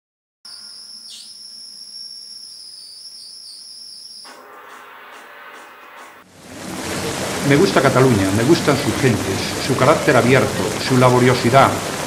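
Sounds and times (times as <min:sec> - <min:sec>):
high whistling tone: 0:00.5 - 0:06.2.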